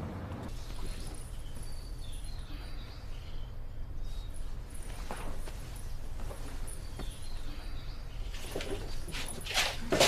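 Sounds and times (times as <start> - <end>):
duvet rustling: 0.5 - 9.9
slippered feet shuffling: 4.0 - 10.0.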